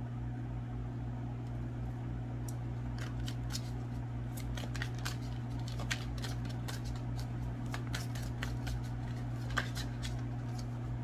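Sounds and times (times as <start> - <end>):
steady low hum: 0.0 - 11.0
cards shuffling: 2.9 - 10.8.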